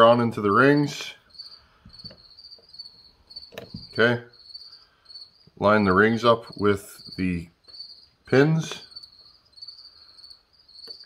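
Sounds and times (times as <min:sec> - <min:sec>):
high-pitched insect trill: 0:00.5 - 0:11.0.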